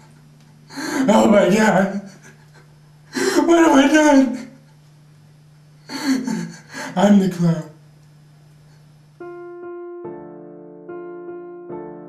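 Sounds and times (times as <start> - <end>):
faint steady hum: 0.0 - 11.8
man gasping laugh: 2.0 - 3.5, 5.9 - 7.0.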